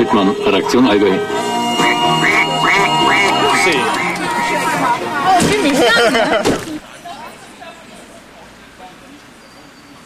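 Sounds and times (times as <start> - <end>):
background music: 0.0 - 5.9
duck-like quacks: 1.8 - 4.9.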